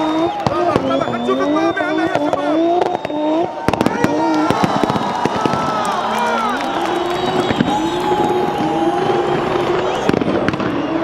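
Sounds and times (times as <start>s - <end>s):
exhaust popping and crackling: 0.0s - 11.0s.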